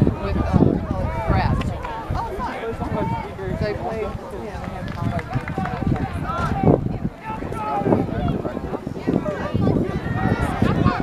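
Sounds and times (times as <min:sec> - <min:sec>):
outdoor background noise: 0:00.0 - 0:11.0
people talking and calling out: 0:00.0 - 0:11.0.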